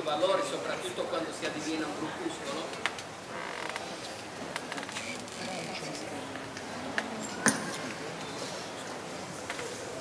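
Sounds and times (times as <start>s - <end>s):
audience murmur: 0.0s - 10.0s
short creak: 3.3s - 5.8s.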